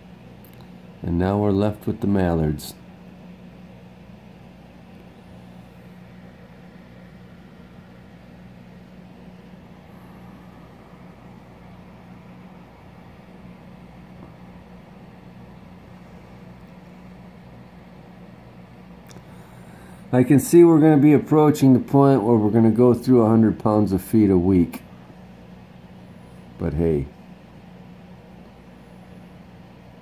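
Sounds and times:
low machine hum: 0:00.0 - 0:30.0.

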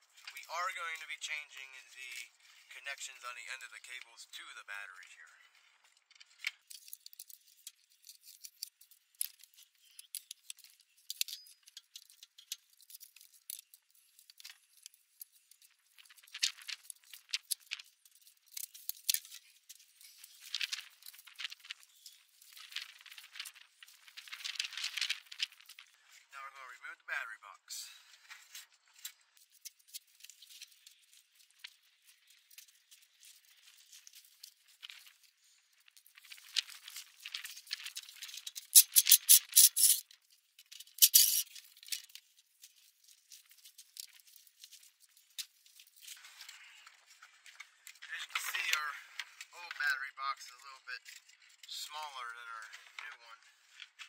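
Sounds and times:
plastic battery box rattling: 0:05.9 - 0:26.0, 0:28.9 - 0:49.5.

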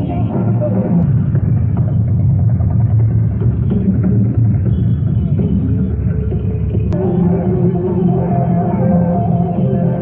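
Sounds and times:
drums: 0:00.0 - 0:10.0.

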